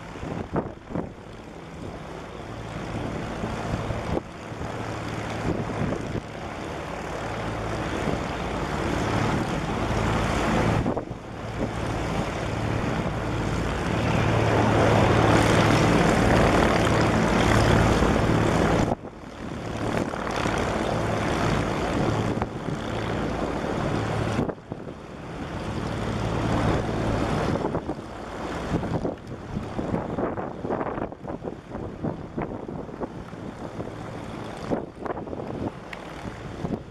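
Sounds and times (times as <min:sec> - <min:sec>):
helicopter rotor and turbine drone: 0:00.0 - 0:36.9.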